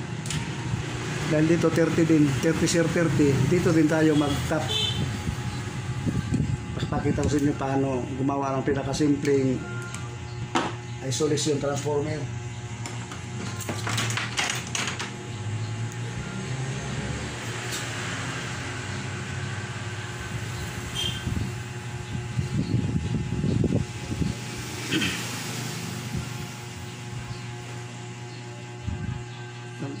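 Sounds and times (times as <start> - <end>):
wires and tools clicking and rustling: 12.8 - 15.2.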